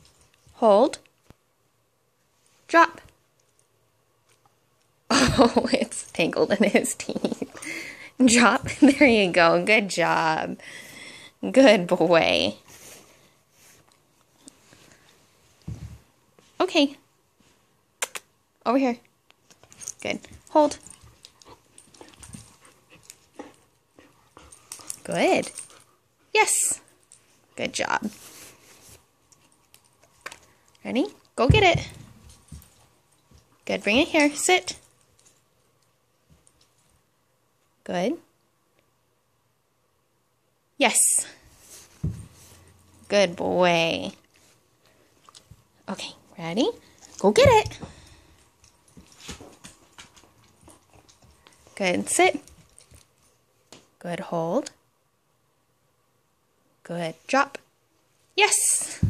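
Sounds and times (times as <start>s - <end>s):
dog paws and toy tapping on carpet: 15.6s - 16.1s, 31.4s - 34.2s, 41.7s - 42.7s.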